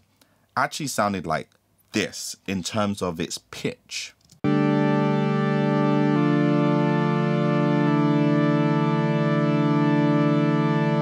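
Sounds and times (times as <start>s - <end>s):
synthesizer playing sustained chords: 4.4s - 11.0s.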